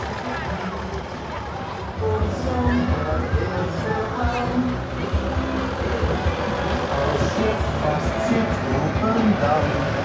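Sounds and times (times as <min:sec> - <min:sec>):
low engine rumble: 0:00.0 - 0:10.0.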